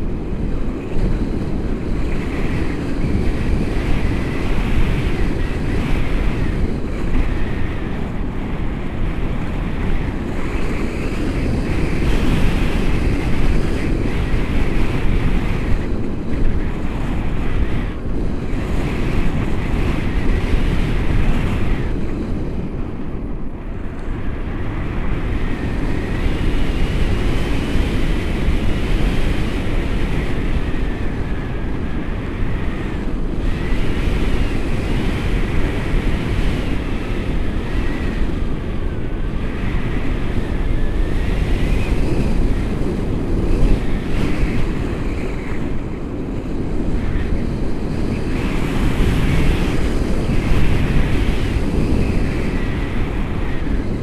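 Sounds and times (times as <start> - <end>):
wind noise on microphone: 0.0 - 54.0.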